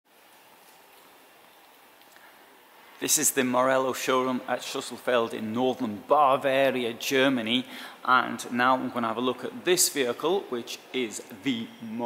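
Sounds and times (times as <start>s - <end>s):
faint room tone hiss: 0.1s - 12.0s.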